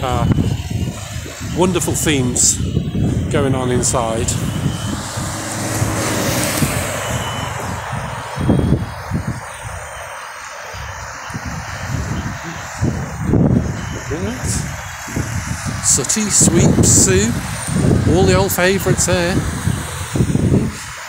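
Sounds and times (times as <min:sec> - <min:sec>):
cars driving past: 0:02.7 - 0:21.0.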